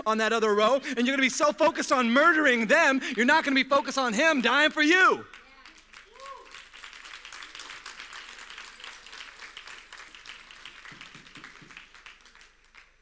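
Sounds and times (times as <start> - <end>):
congregation applauding: 4.0 - 13.0.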